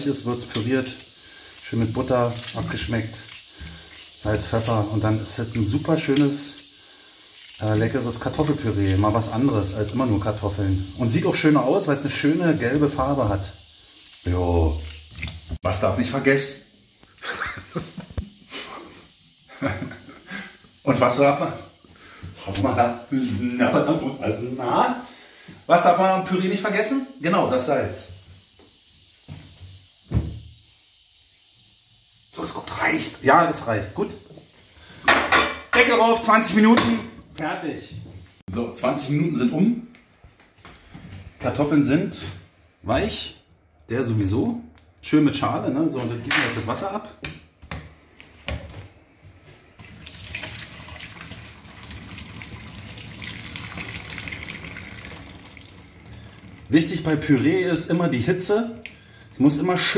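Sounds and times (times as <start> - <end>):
water pouring into sink: 0.0 - 16.3, 49.7 - 59.9.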